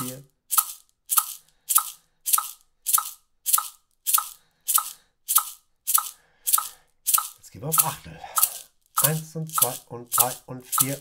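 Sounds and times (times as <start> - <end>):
maraca shaking: 0.0 - 11.0.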